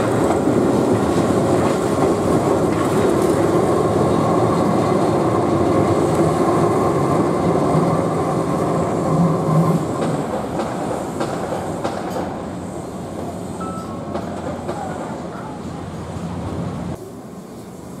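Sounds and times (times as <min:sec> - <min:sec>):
electric train running on track: 0:00.0 - 0:18.0.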